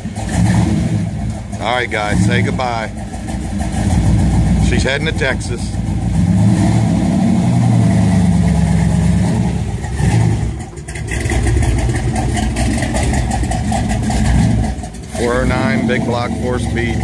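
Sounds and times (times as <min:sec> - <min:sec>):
car engine pulling away: 0:00.0 - 0:17.0.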